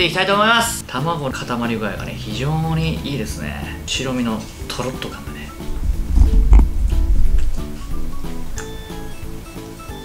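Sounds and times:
music of short repeating notes: 2.0s - 10.0s.

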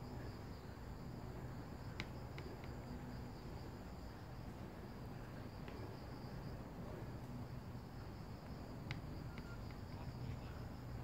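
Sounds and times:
low background hum: 0.0s - 11.0s
faint ticks: 1.9s - 2.9s, 8.4s - 10.6s
high-pitched insect drone: 5.9s - 11.0s.

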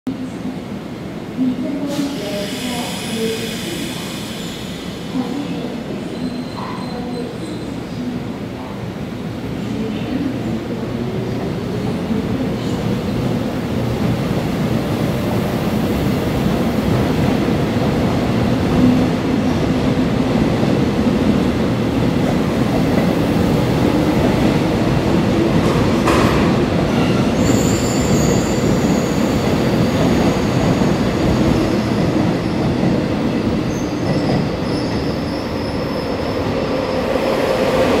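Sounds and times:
high squeal: 27.4s - 30.0s.

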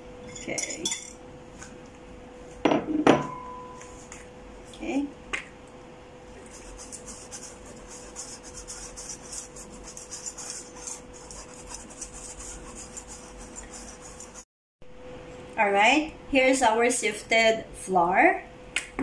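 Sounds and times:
whisk scratching metal sieve: 6.4s - 14.5s.

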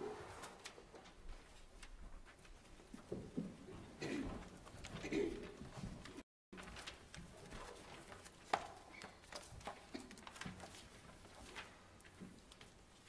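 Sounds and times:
people shuffling: 0.0s - 13.0s.

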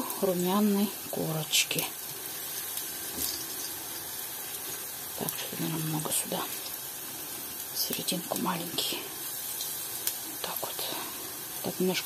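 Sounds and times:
oil sizzling in frying pan: 0.0s - 12.0s.

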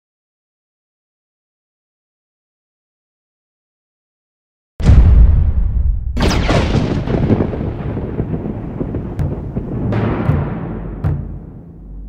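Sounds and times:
deep rolling rumble: 4.8s - 12.0s.

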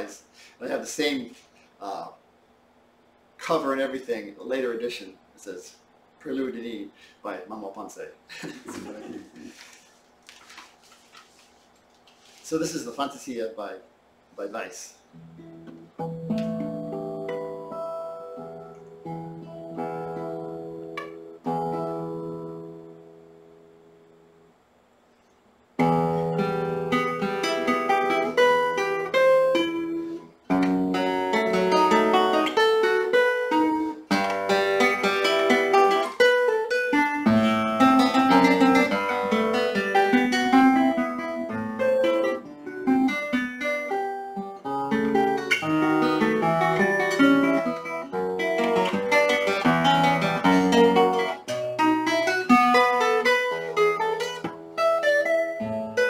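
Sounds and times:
classical guitar fingerstyle: 15.1s - 24.0s, 25.8s - 56.0s.

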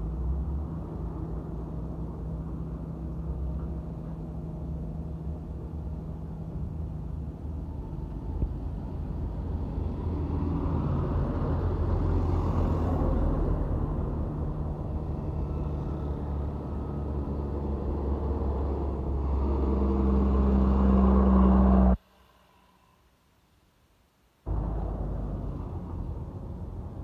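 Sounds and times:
diesel trucks driving past: 0.0s - 23.0s, 24.5s - 27.0s.

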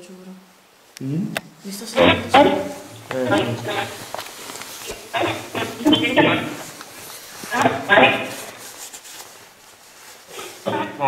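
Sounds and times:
faint room hiss: 0.0s - 11.0s
person speaking: 1.0s - 4.2s, 4.8s - 8.6s, 10.6s - 11.0s.

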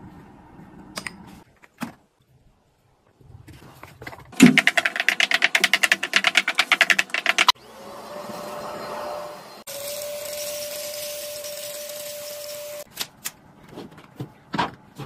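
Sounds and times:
rapid loud clicks: 4.4s - 7.6s
stick vacuum cleaner whining: 4.4s - 12.9s.

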